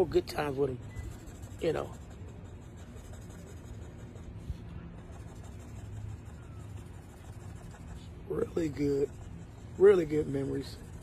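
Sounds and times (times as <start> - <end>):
low background rumble: 0.0 - 11.0
pen scratching on a board: 0.0 - 11.0.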